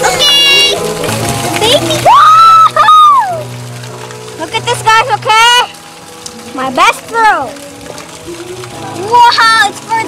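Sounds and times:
upbeat background music: 0:00.0 - 0:10.0
child squealing excitedly: 0:02.0 - 0:03.4.

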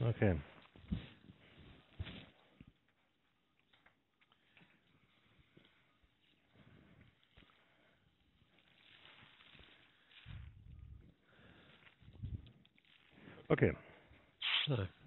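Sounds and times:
faint rustling and handling: 0:00.2 - 0:15.0.

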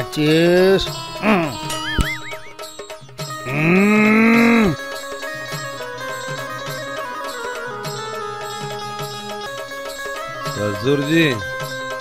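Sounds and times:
soft background music: 0:00.0 - 0:12.0
cow mooing: 0:03.5 - 0:04.8.

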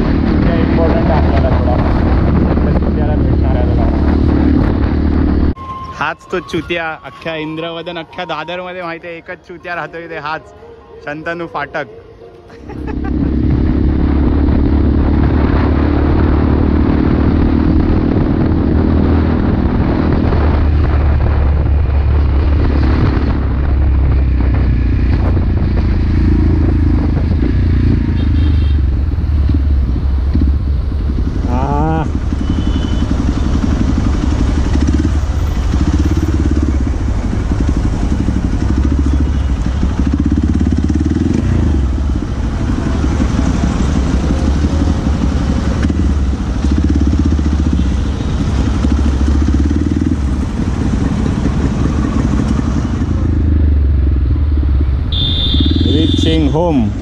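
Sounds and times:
road noise: 0:00.0 - 0:57.0
motorcycle engine running: 0:12.8 - 0:57.0.

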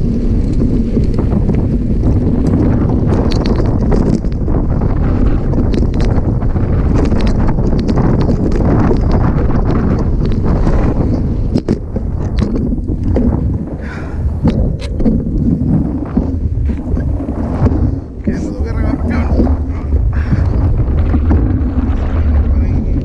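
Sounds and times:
bike rattling over bumps: 0:00.0 - 0:23.0
wind buffeting microphone: 0:00.0 - 0:23.0.

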